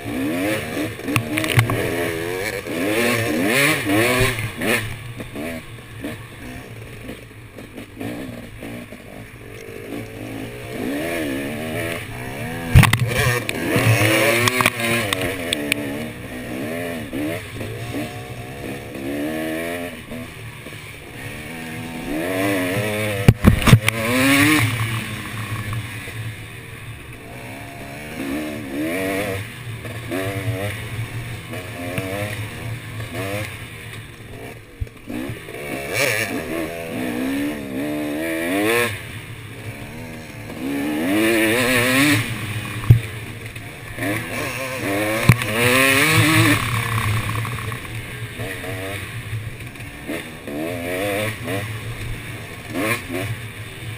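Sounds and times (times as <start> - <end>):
dirt bike engine revving: 0.0 - 53.9.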